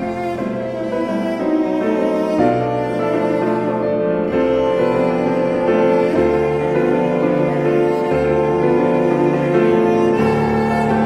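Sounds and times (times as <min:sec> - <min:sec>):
cello bowing long notes: 0:00.0 - 0:11.0
piano accompaniment: 0:00.0 - 0:11.0.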